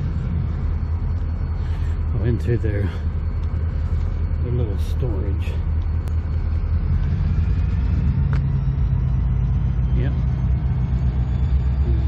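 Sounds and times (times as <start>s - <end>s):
diesel locomotive rumbling: 0.0s - 12.0s.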